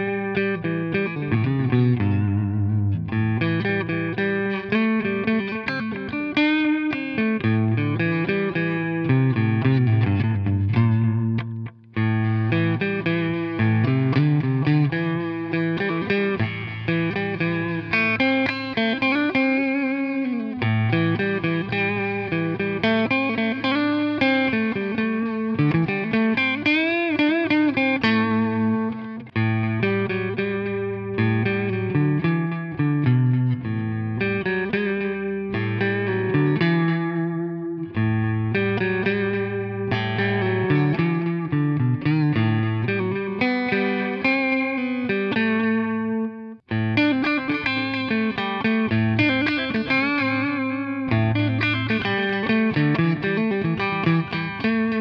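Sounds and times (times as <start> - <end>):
electric guitar with delay: 0.0 - 55.0.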